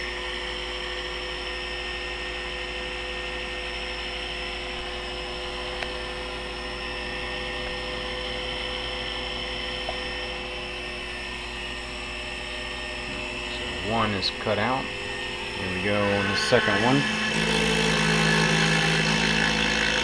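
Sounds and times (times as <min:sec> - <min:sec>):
milling spindle whine: 0:00.0 - 0:20.0.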